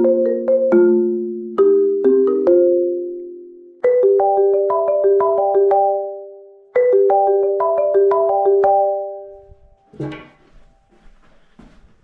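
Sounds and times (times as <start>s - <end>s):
marimba notes: 0.0s - 9.8s.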